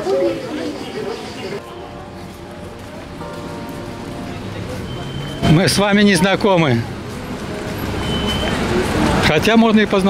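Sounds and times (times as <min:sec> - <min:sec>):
road traffic rumble: 0:00.0 - 0:10.0
vehicle passing: 0:02.0 - 0:10.0.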